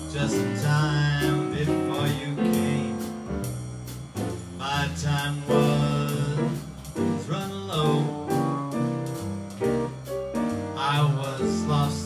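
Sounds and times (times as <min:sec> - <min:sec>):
drum kit and cymbals: 0:00.0 - 0:12.0
piano chords: 0:00.0 - 0:12.0
walking upright bass: 0:00.0 - 0:12.0.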